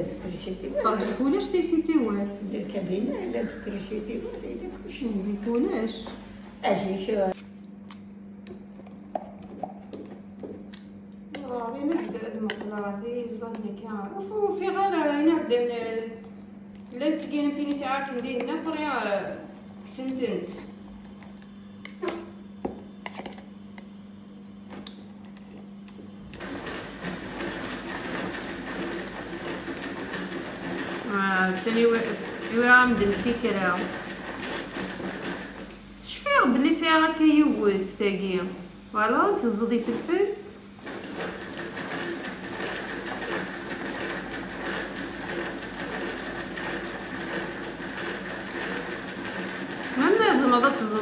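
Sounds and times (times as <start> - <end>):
hand-cranked food chopper whirring: 26.2 - 37.6, 38.9 - 51.0.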